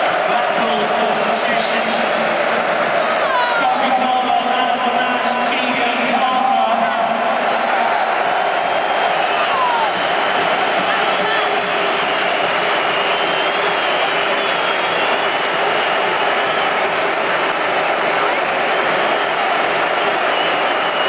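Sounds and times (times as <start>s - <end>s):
stadium crowd shouting and cheering: 0.0s - 21.0s.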